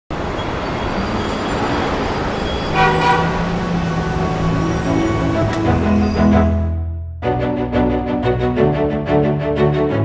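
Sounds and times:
horn-like toot: 2.7 - 6.6.

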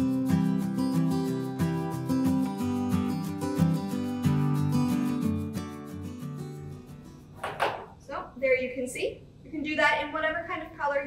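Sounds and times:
plucked acoustic guitar: 0.0 - 7.8
woman speaking: 8.0 - 11.0.

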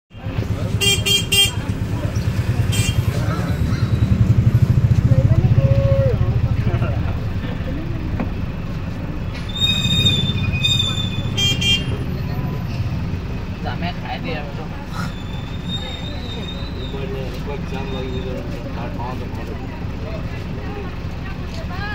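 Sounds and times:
engine and road rumble: 0.1 - 21.9
vehicle horn toots: 0.7 - 1.7, 2.7 - 3.1, 9.6 - 12.1.

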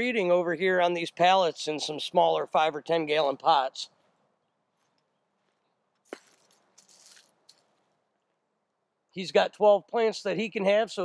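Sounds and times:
faint crunching: 3.1 - 8.5.

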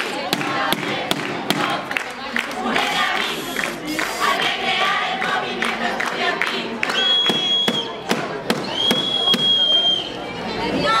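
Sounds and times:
crowd chanting: 0.0 - 7.1
protest crowd: 0.0 - 11.0
high-pitched whistle blasts: 7.0 - 8.0, 8.6 - 10.2.

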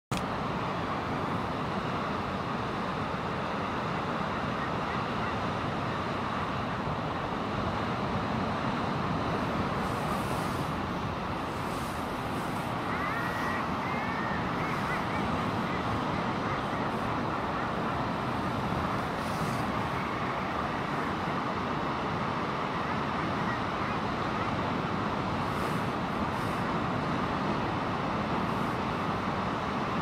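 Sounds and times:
sea noise: 0.1 - 30.0
wind noise: 0.2 - 30.0
seabird colony calling: 9.8 - 21.3.

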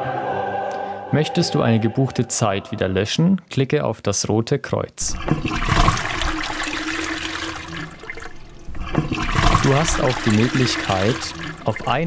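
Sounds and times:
low steady hum: 5.1 - 12.0
rushing water-like noise: 5.1 - 12.0.

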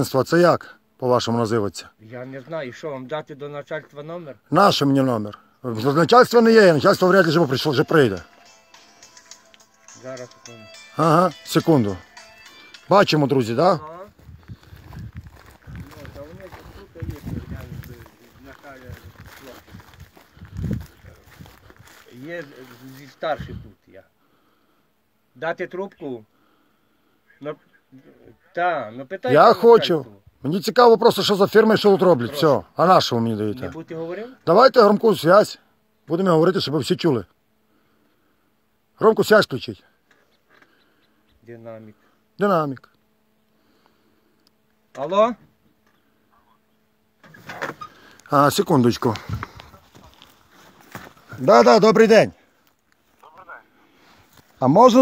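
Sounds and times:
footsteps on soft ground: 13.1 - 23.7, 48.3 - 53.2, 53.9 - 55.0
distant man's voice: 15.6 - 19.8.

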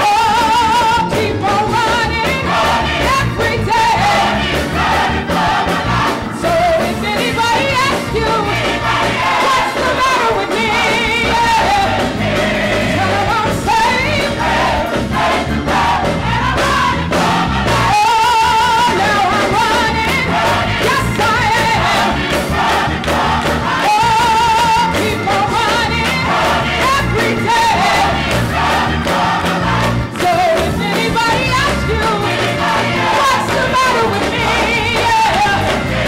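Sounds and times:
woman singing lead with vibrato: 0.0 - 4.4, 6.1 - 14.8, 16.2 - 22.1, 23.7 - 28.2, 30.0 - 35.9
gospel choir singing: 0.0 - 36.0
live instrumental backing: 0.0 - 36.0.

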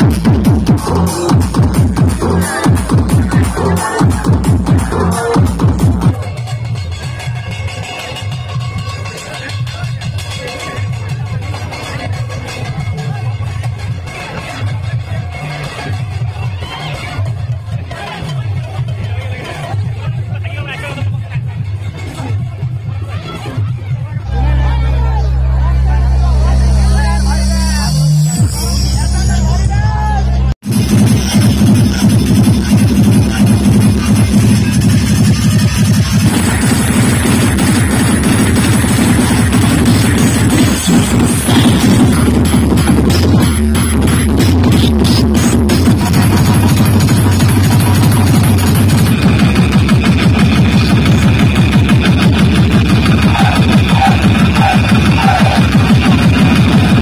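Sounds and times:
loud steady bass note: 0.0 - 7.1, 24.2 - 57.0
crowd chatter: 0.0 - 57.0.

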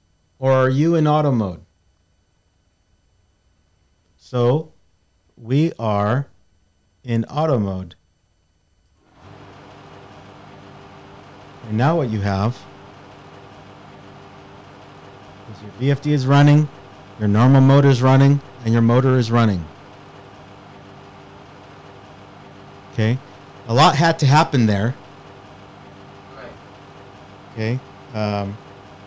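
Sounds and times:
background hum and hiss: 0.0 - 29.0.

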